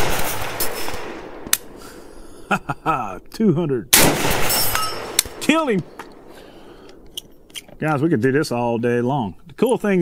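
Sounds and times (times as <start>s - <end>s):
low steady hiss: 0.4s - 10.0s
man talking: 2.5s - 4.0s, 5.3s - 6.0s, 7.7s - 10.0s.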